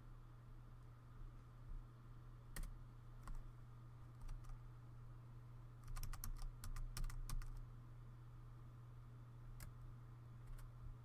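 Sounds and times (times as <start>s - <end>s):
low electrical hum: 0.0s - 11.0s
keyboard keystrokes: 5.8s - 7.6s.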